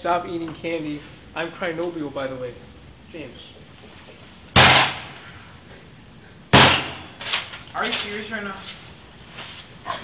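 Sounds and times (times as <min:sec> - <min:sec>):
loud bang: 0:04.6 - 0:05.2, 0:06.5 - 0:07.3.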